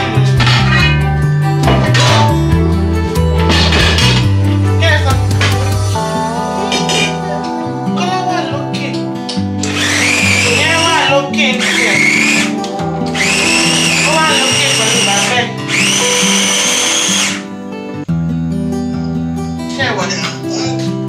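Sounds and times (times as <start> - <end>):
background music: 0.0 - 21.0
food chopper motor whirring: 9.6 - 12.6, 13.2 - 17.5.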